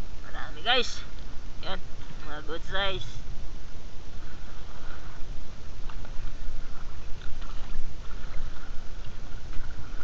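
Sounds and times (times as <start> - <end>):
muffled water sloshing: 1.1 - 10.0.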